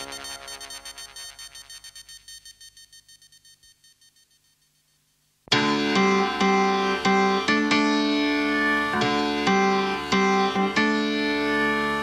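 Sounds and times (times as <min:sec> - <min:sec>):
synthesizer pulsing high beeps: 0:00.0 - 0:04.9.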